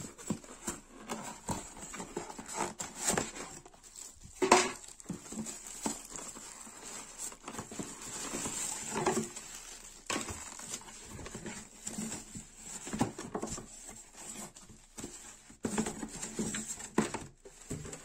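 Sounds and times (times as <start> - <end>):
cardboard and polystyrene knocking: 0.0 - 18.0
plastic bag rustling: 0.0 - 18.0.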